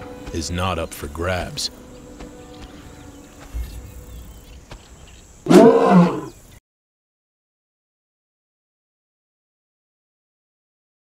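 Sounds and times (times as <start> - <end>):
lion roaring: 5.4 - 6.4.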